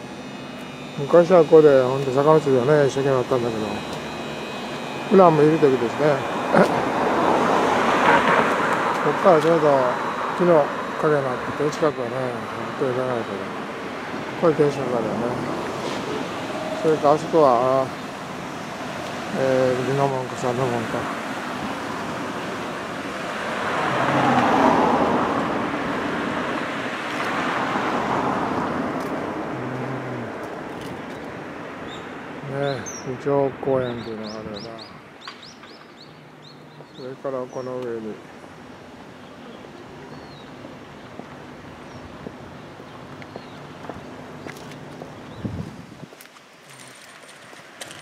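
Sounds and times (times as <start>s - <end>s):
car passing: 0.0s - 45.9s
road traffic noise: 0.0s - 48.0s.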